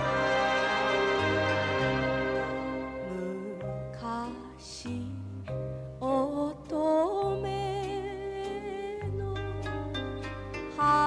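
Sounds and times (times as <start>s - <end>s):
band accompaniment: 0.0s - 3.3s
woman singing with vibrato: 2.7s - 5.3s.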